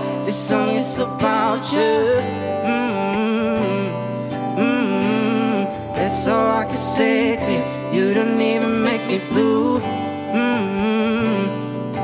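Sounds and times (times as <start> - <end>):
stage piano and band: 0.0 - 12.0
person humming vocal line: 0.2 - 11.8.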